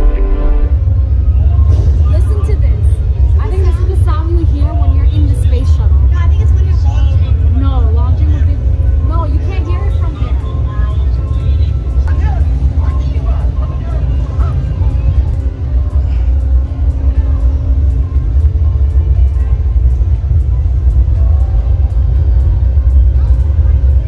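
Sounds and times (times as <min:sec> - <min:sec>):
music: 0:00.0 - 0:24.0
voices: 0:00.7 - 0:24.0.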